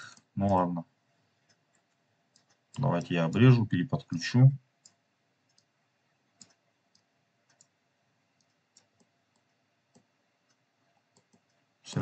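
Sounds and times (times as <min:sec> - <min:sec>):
computer mouse clicks: 0:01.4 - 0:03.5, 0:04.8 - 0:11.6.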